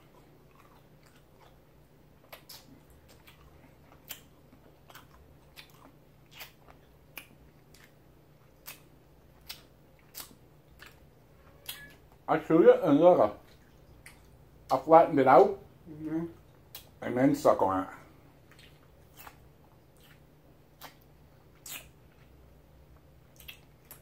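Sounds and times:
candy chewing crunches: 0.1 - 12.0, 18.4 - 22.3.

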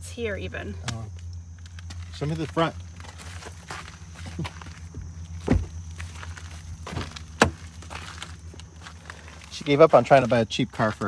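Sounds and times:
footsteps on gravel: 1.5 - 11.0.

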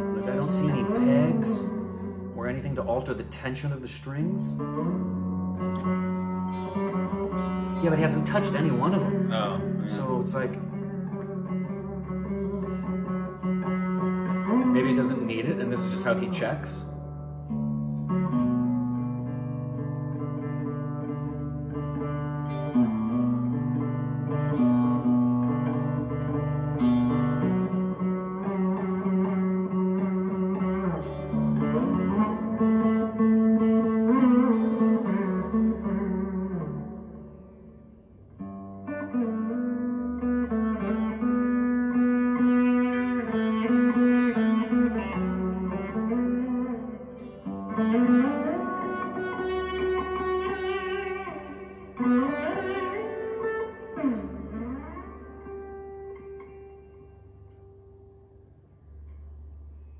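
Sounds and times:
veena plucked notes with pitch bends: 0.0 - 59.9.

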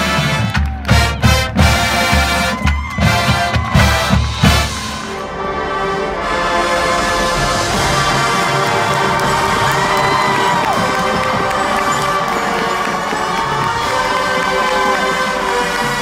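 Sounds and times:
crowd cheering: 0.0 - 16.0
marching band sustained chords: 0.0 - 16.0
rising and falling whoops: 7.4 - 15.2.

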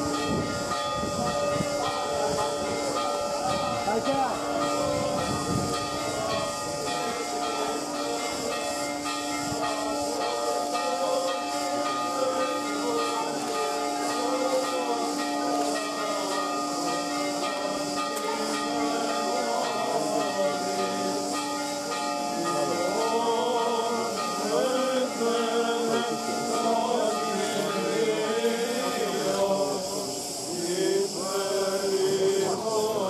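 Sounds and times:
steady high hiss: 0.0 - 33.0
men chanting: 10.2 - 21.4, 22.4 - 33.0.

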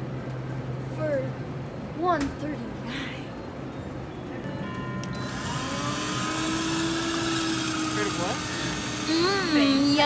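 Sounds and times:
drink dispenser motor whirring: 5.1 - 10.0.

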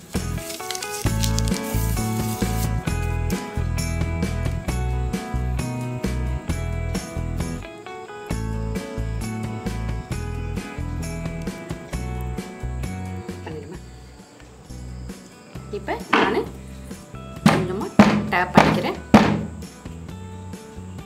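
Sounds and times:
background music: 0.0 - 21.0
cake pan knocking on counter: 17.5 - 19.6.

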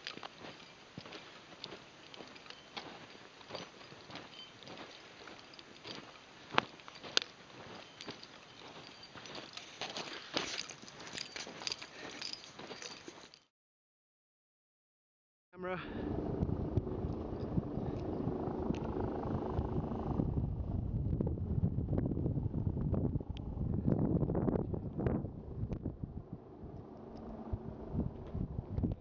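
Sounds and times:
wind buffeting microphone: 15.9 - 29.0.

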